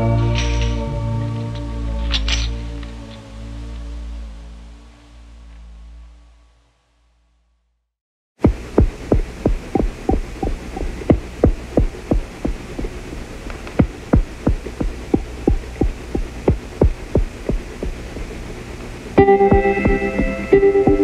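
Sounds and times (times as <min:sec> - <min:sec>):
electronic music with low drone: 0:00.0 - 0:06.4, 0:08.4 - 0:21.0
thumping pulse: 0:08.4 - 0:21.0.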